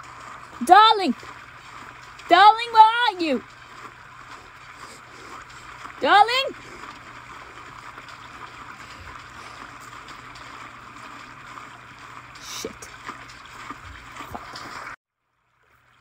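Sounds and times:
stream water running: 0.0 - 16.0.

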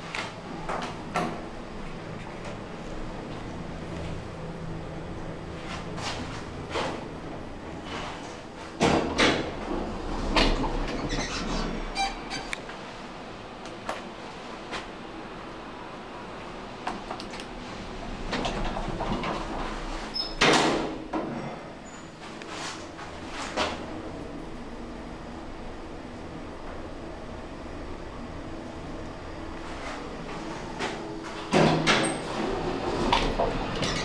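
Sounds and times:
lift doors sliding: 5.6 - 13.1, 17.0 - 24.2, 29.6 - 34.0.

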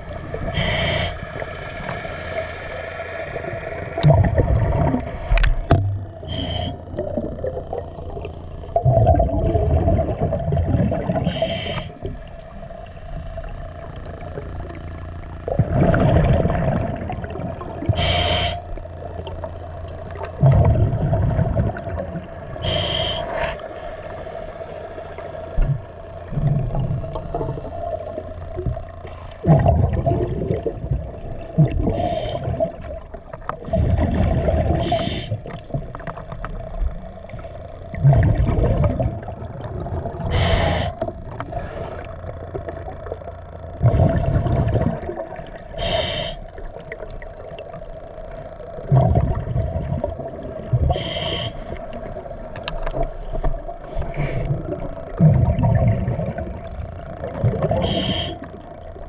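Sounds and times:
exhaled bubbles rumbling: 0.0 - 24.1, 25.0 - 59.0
steady hum: 0.0 - 59.0
regulator inhalation hiss: 0.4 - 3.2, 6.2 - 6.8, 11.2 - 12.0, 17.9 - 18.7, 22.6 - 23.9, 31.9 - 32.6, 34.8 - 35.4, 40.3 - 41.0, 45.8 - 46.5, 50.8 - 51.8, 57.8 - 58.6.

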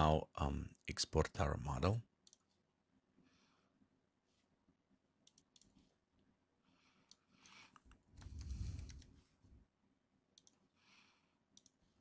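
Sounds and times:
computer mouse clicks: 2.2 - 2.6, 5.2 - 5.9, 7.0 - 9.2, 10.4 - 10.6, 11.5 - 11.8.

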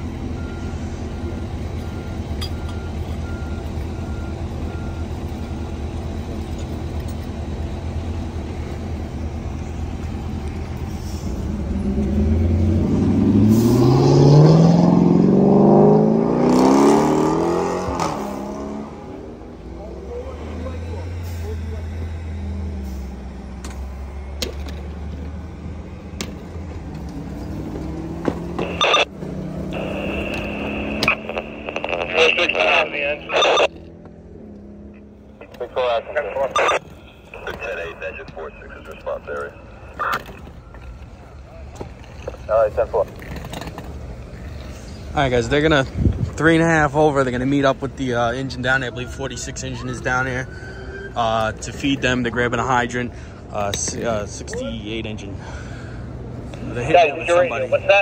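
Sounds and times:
diesel engine revving: 0.0 - 53.6.

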